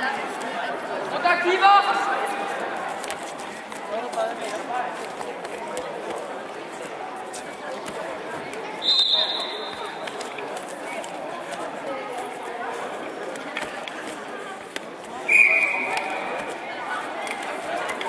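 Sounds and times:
murmur of voices: 0:00.0 - 0:18.0.

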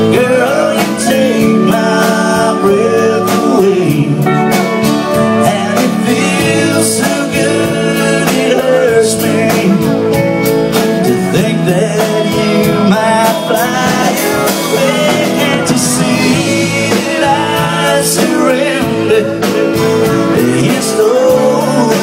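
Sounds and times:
drums: 0:00.0 - 0:22.0
keyboard: 0:00.0 - 0:22.0
strummed acoustic guitar: 0:00.0 - 0:22.0.

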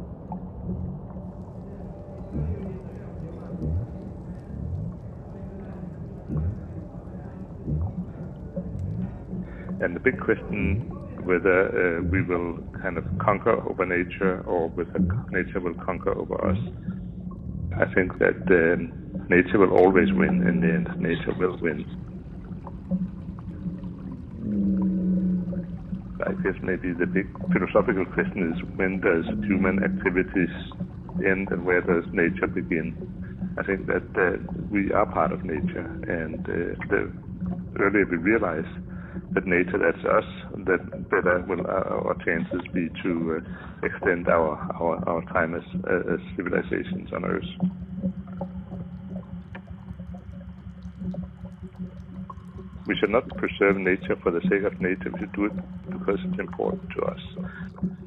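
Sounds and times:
low droning hum: 0:00.0 - 0:58.0
water trickling and gurgling: 0:00.0 - 0:58.0
drip-like clicks: 0:00.3 - 0:58.0
faint scattered ticks: 0:00.3 - 0:58.0.

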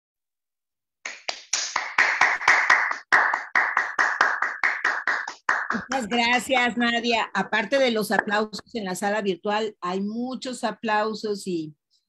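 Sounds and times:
hands clapping in applause: 0:01.0 - 0:06.5.

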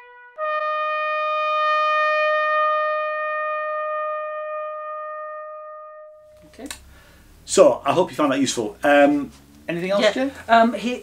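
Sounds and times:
trumpet holding long note: 0:00.0 - 0:06.4.

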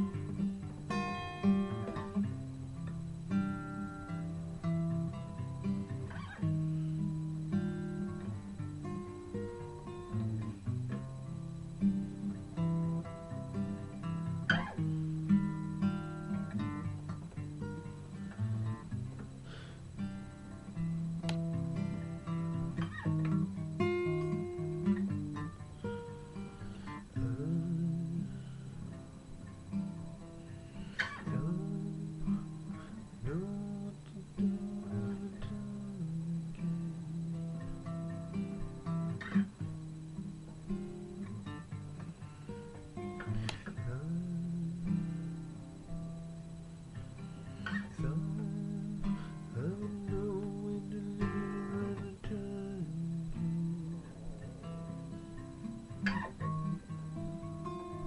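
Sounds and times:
solo acoustic guitar: 0:00.0 - 0:58.0.

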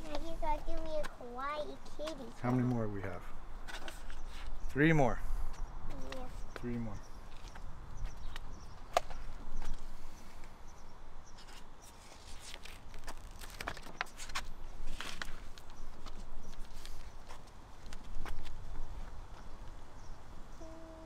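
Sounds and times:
footsteps on pavement: 0:00.0 - 0:04.6, 0:05.5 - 0:09.9, 0:12.6 - 0:19.8.

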